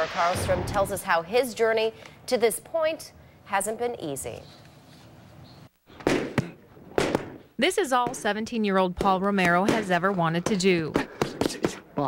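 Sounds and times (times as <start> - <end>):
boxing gloves hitting: 6.0 - 7.4.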